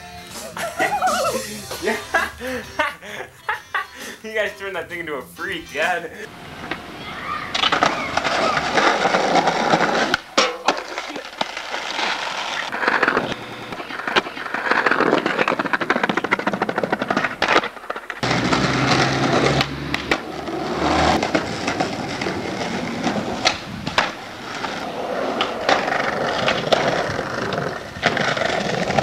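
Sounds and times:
skateboard rolling: 5.8 - 29.0
skateboard clacks: 6.3 - 29.0.

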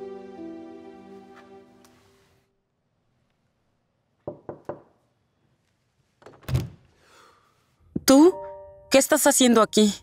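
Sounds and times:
knocks on wooden door: 4.3 - 4.9.

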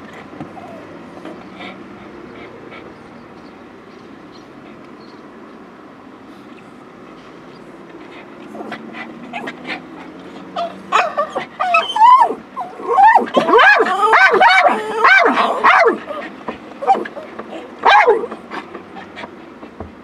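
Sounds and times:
low steady background noise: 0.0 - 20.0
whining and yelping calls: 0.5 - 3.5, 8.5 - 19.4.

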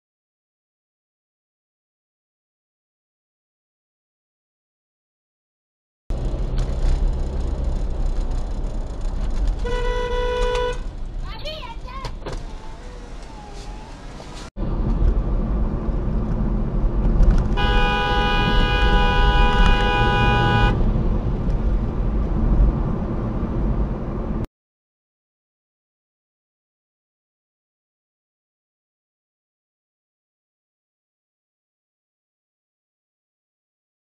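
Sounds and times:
car road and engine rumble: 6.1 - 24.5
car horn: 9.6 - 10.9, 17.5 - 20.9.

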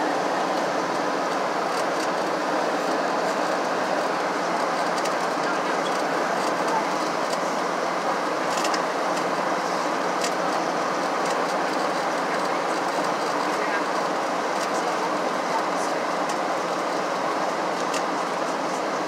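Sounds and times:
jet engine drone: 0.0 - 19.0.

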